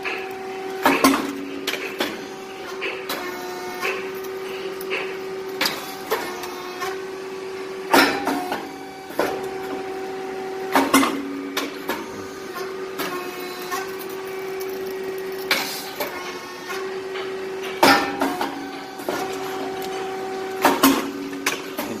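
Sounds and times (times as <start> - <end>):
machine humming: 0.0 - 22.0.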